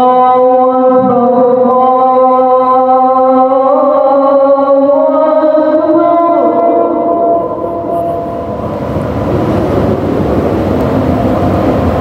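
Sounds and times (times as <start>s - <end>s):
loud steady rumbling: 0.0s - 12.0s
organ-like held tones: 6.0s - 12.0s.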